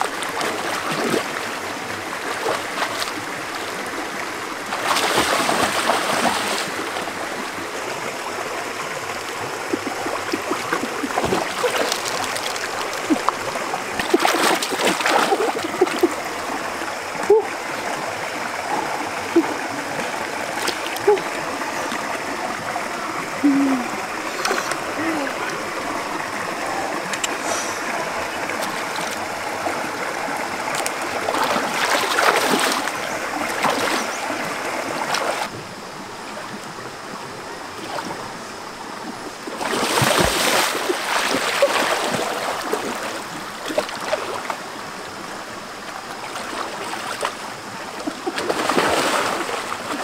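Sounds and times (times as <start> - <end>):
stream running over rocks: 0.0 - 50.0.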